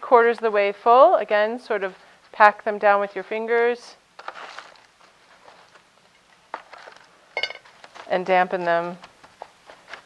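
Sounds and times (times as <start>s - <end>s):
soil scraping rustle: 4.2s - 5.8s.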